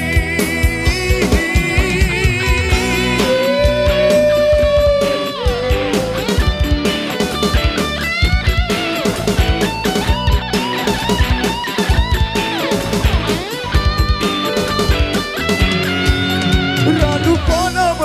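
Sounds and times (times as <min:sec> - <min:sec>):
electric guitar lead: 0:00.0 - 0:18.0
drum beat: 0:00.9 - 0:17.8.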